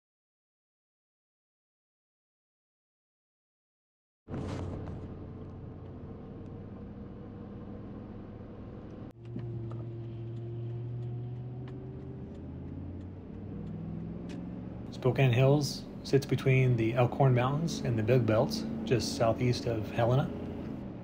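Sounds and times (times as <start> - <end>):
car engine and road hum: 4.3 - 21.0.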